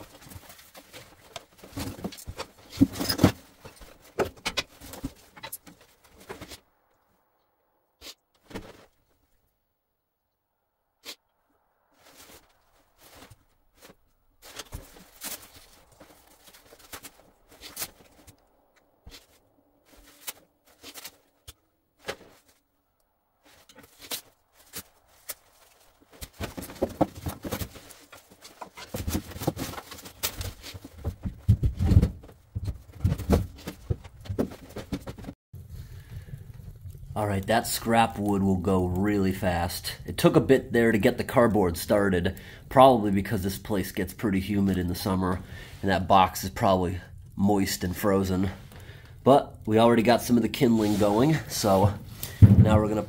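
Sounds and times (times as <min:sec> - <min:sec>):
wood knocking and clattering: 0:00.0 - 0:06.6, 0:26.2 - 0:35.4, 0:52.2 - 0:53.0.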